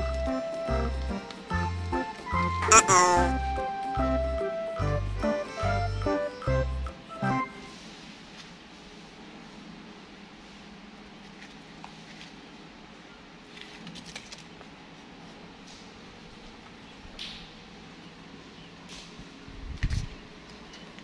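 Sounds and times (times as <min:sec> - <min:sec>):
music burst: 0:02.4 - 0:07.7.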